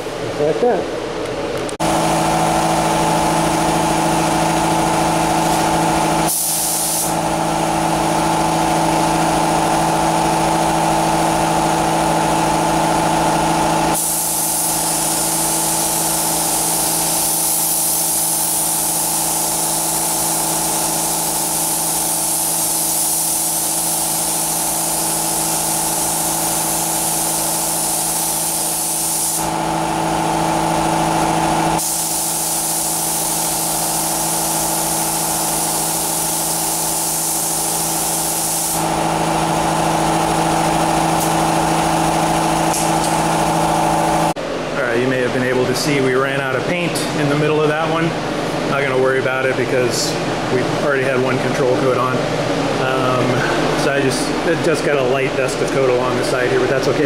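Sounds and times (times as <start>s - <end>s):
steady machine hum: 0.0s - 57.0s
paint spray gun hissing: 1.9s - 44.4s.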